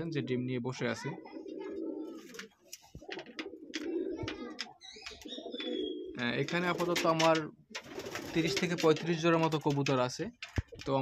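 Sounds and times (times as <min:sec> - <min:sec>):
pigeons cooing: 0:00.0 - 0:09.5.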